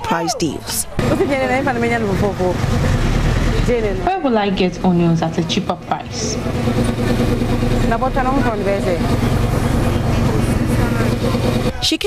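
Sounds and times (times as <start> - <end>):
people talking and calling: 0.0 - 12.0
vehicle traffic hum: 0.0 - 12.0.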